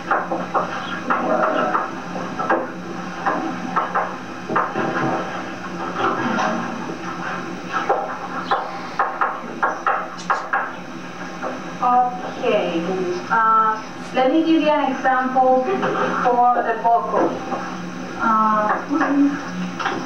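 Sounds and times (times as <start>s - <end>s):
steady low hum: 0.0s - 20.0s
overlapping voices: 1.0s - 2.0s.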